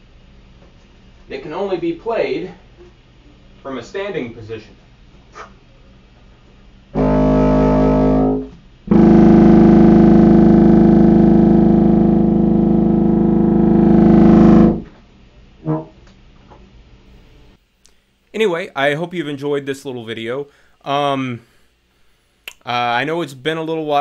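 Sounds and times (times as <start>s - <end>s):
contrabassoon low notes: 7.0s - 14.9s.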